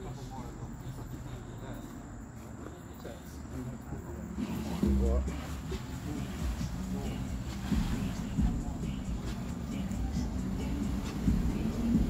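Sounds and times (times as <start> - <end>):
distant people talking: 0.0 - 12.0
steady low hum: 0.0 - 12.0.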